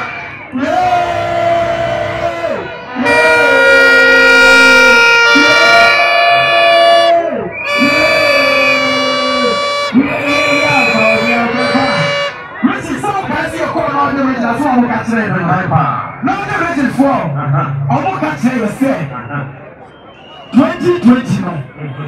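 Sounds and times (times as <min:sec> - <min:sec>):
plastic trumpet horn blasts: 0:03.0 - 0:07.1, 0:07.7 - 0:12.6
voices: 0:07.0 - 0:22.0.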